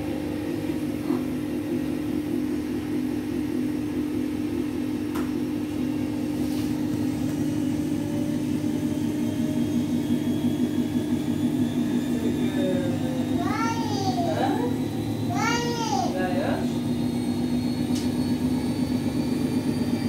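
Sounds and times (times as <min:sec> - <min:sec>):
washing machine spinning: 0:00.0 - 0:20.0.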